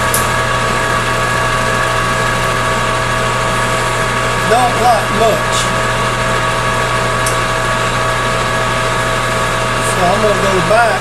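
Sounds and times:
metal lathe humming and whining: 0.0s - 11.0s.

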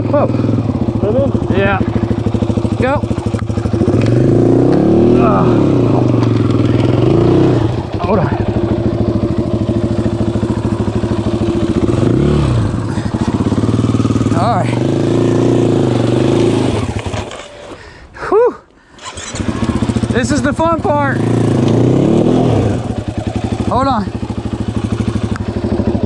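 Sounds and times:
dirt bike engine revving: 0.0s - 17.8s, 19.0s - 26.0s.

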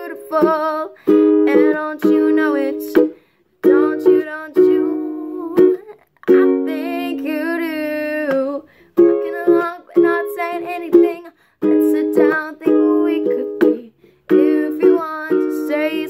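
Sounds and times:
person singing pop song: 0.0s - 16.0s
ukulele strumming: 0.0s - 16.0s.

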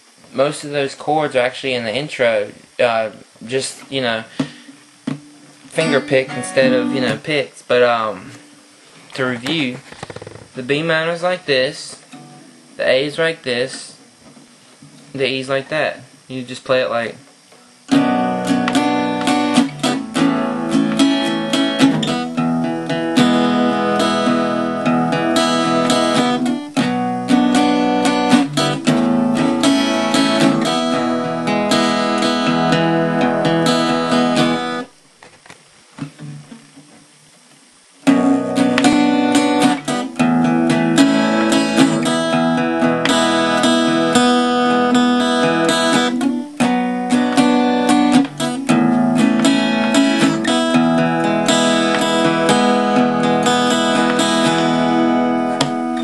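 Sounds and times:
acoustic guitar strumming: 4.3s - 8.7s, 12.1s - 13.6s, 17.6s - 35.0s, 36.0s - 37.0s, 38.0s - 56.0s.

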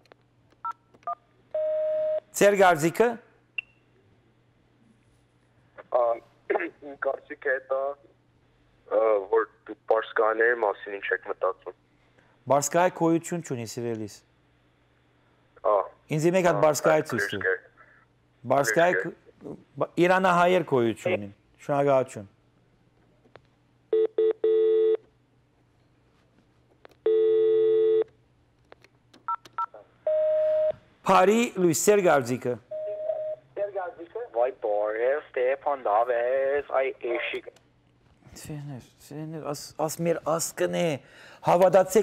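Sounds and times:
man speaking: 18.4s - 22.3s.

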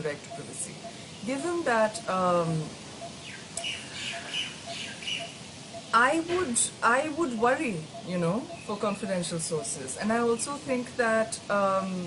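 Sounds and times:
faint steady hiss: 0.0s - 12.0s
bird chirping: 0.2s - 11.4s.

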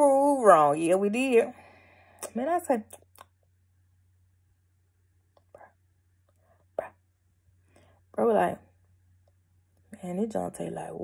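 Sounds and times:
faint low hum: 0.0s - 11.0s
woman speaking softly: 9.9s - 11.0s.

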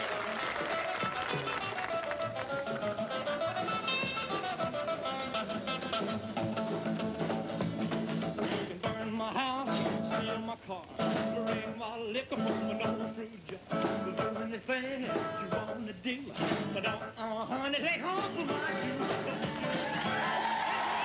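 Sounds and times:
electric guitar lead: 0.0s - 8.8s
upright bass: 0.0s - 20.2s
drums: 0.0s - 21.0s.

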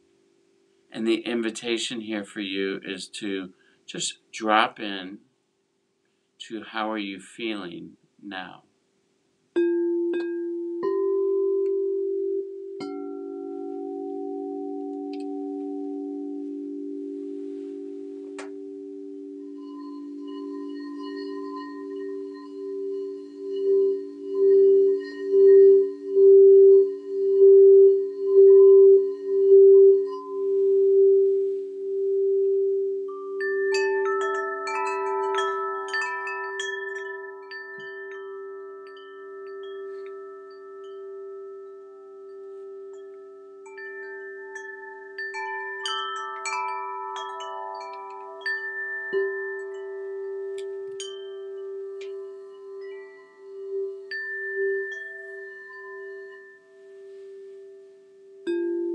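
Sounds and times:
bright chimes tinkling: 9.6s - 58.9s
crystal singing bowl humming: 9.6s - 58.9s.

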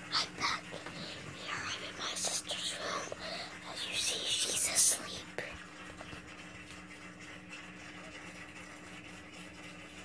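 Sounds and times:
person whispering: 0.0s - 5.6s
faint steady hum: 0.0s - 10.0s.

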